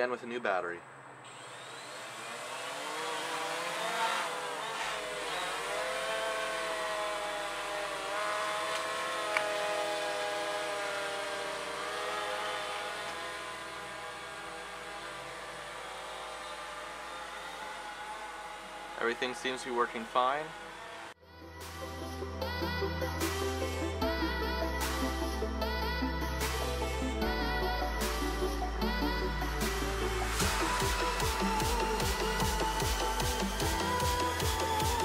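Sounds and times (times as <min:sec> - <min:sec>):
quadcopter motors whirring: 0:01.2 - 0:21.2.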